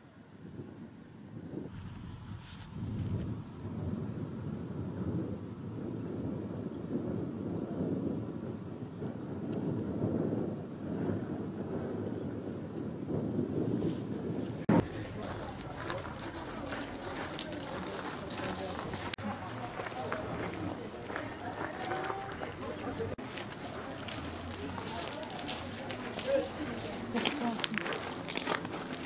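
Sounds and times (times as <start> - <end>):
wind rumbling on microphone: 0.0 - 29.0
people's voices: 14.4 - 29.0.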